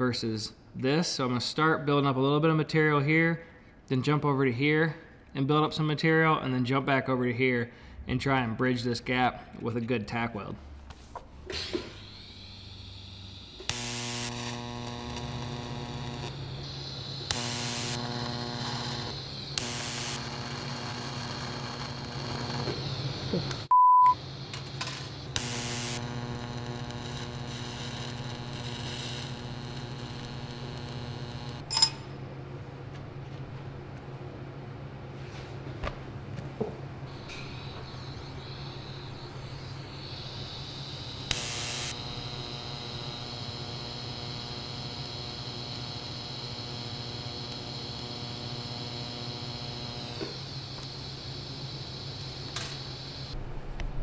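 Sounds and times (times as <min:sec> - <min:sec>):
welding arc buzz and hiss: 0:10.9 - 0:31.9, 0:37.0 - 0:53.4
crackling arc starts: 0:11.5 - 0:31.7, 0:37.1 - 0:54.0
short high beep: 0:23.7 - 0:24.2.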